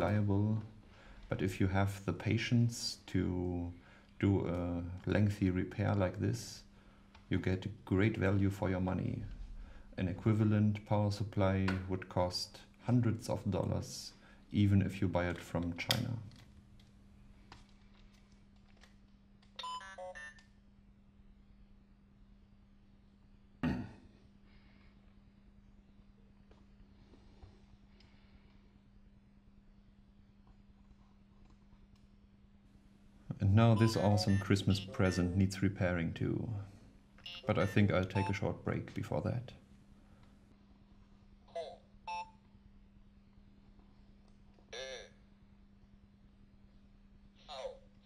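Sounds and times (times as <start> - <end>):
faint low hum: 0.0 - 48.0.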